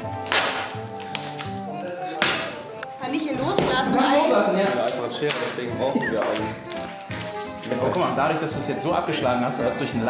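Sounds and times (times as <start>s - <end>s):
adhesive tape ripping off roll: 0.0s - 2.6s, 4.8s - 8.2s
background music: 0.0s - 10.0s.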